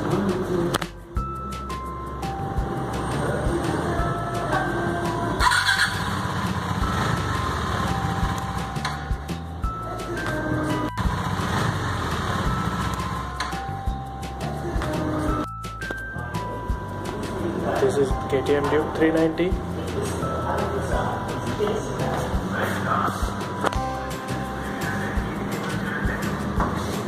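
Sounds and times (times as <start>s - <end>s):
background music: 0.0s - 27.0s
motorcycle engine rumbling: 2.6s - 15.4s.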